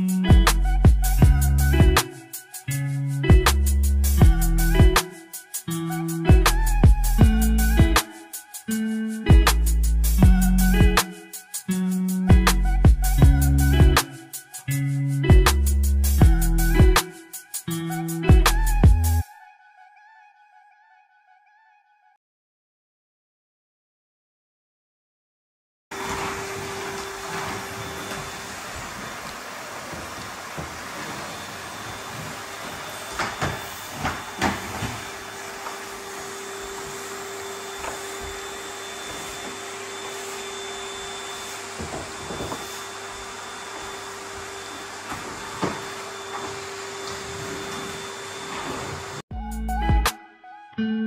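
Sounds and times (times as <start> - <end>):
mechanical hum with hiss: 26.0 - 49.2.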